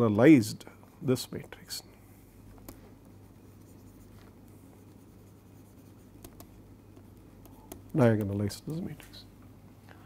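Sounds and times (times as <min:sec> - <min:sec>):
low steady hum: 0:00.0 - 0:10.0
stylus scratching and tapping on screen: 0:02.5 - 0:08.5.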